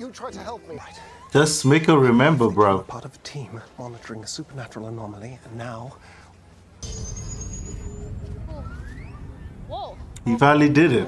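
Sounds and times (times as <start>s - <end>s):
faint falling high tone: 6.8s - 10.2s
low rumbling ambience: 6.8s - 11.0s.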